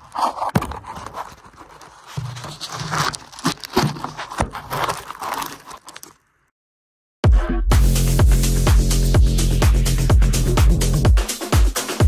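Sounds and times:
wheel knocking and scraping on studs: 0.0s - 6.1s.

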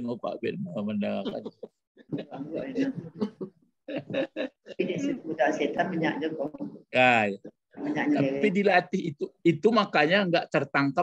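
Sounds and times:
man speaking: 0.0s - 1.6s, 7.0s - 7.6s, 8.2s - 11.0s.

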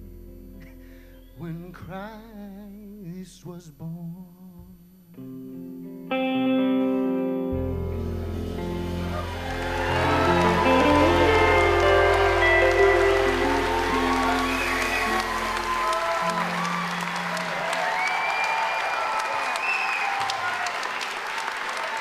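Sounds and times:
live band holding chord: 7.0s - 18.9s
audience applauding: 8.5s - 22.0s.

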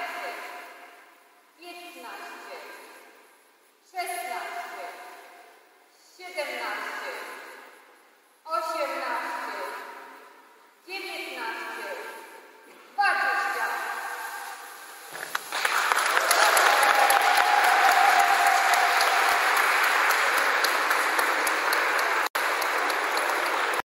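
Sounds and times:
group of people clapping: 15.1s - 23.9s.

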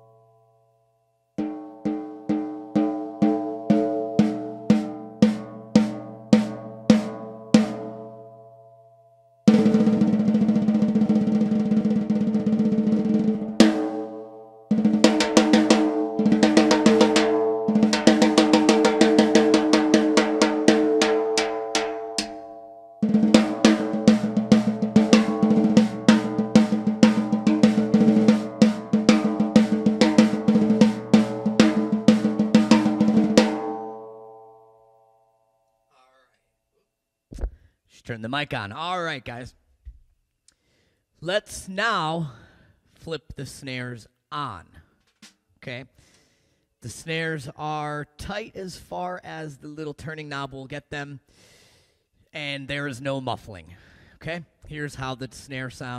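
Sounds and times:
snare drum played with sticks: 1.4s - 8.0s, 9.5s - 34.0s.

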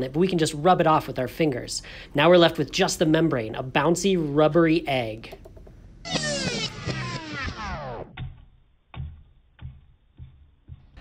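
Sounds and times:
downward-sliding sound effect: 6.1s - 8.3s
egg bouncing on a plate: 8.9s - 11.0s.

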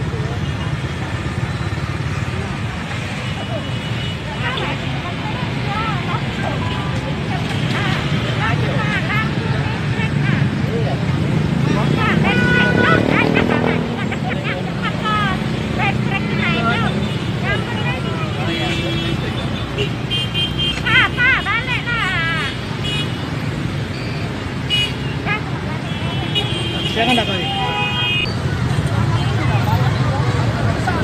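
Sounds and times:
motorbike and vehicle engines: 0.0s - 31.0s
people calling out and talking: 0.0s - 31.0s
horn toots: 11.8s - 14.0s.

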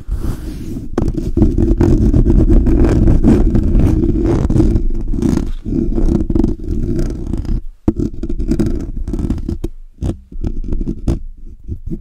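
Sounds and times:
fingers scratching microphone grille: 0.0s - 12.0s.

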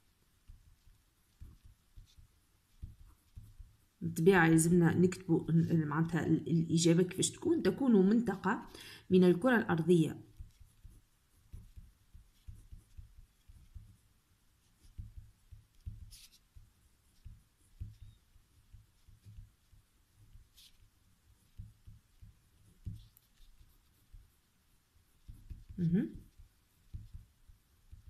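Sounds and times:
pen scratching on paper: 0.4s - 28.0s.

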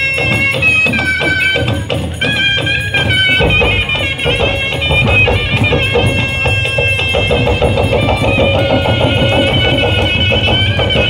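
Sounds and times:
barrel drums beaten with sticks: 0.0s - 11.0s
shrill reed pipe: 0.0s - 11.0s.

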